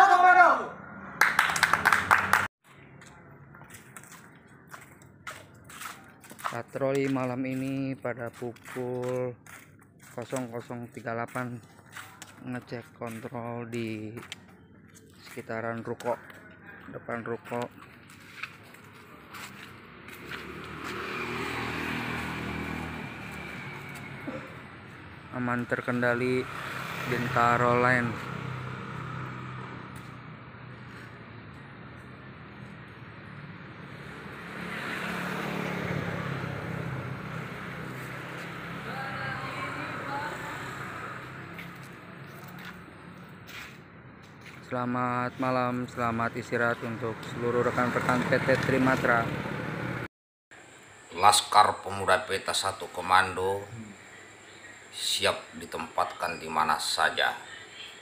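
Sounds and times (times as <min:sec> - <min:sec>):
men shouting together: 0:00.0 - 0:00.8.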